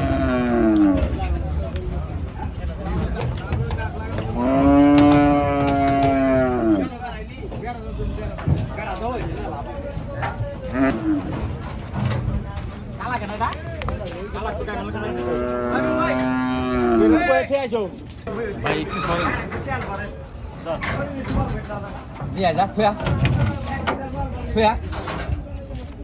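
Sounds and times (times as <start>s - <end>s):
cow mooing: 0.0s - 1.2s, 4.3s - 6.9s, 10.7s - 11.4s, 15.0s - 17.2s.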